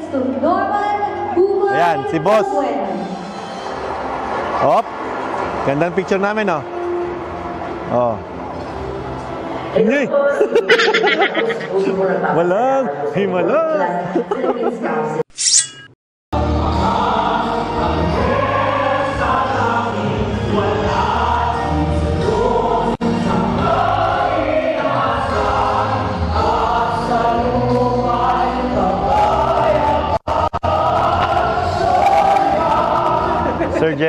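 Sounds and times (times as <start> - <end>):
backing singers: 16.4 - 33.9.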